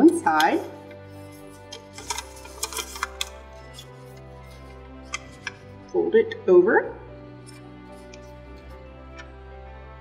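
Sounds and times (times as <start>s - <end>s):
background music: 0.0s - 10.0s
paper crackling while folded: 0.8s - 5.4s.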